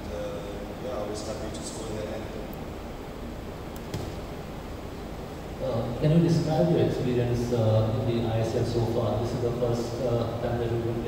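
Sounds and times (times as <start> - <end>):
room noise and hiss: 0.0 - 11.0.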